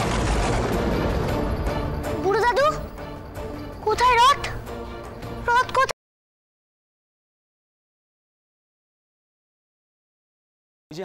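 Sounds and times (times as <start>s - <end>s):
background music: 0.0s - 5.9s
child calling out: 3.8s - 4.6s, 5.4s - 5.9s.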